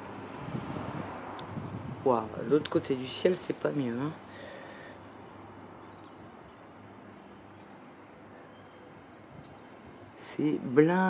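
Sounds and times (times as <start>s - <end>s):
wind on microphone: 0.0s - 2.9s
distant traffic: 0.0s - 11.0s.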